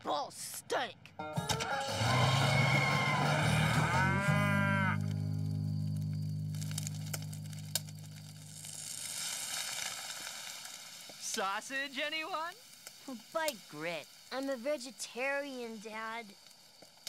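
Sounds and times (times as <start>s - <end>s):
harsh rough animal call: 1.7s - 5.2s
long low moo: 1.9s - 5.3s.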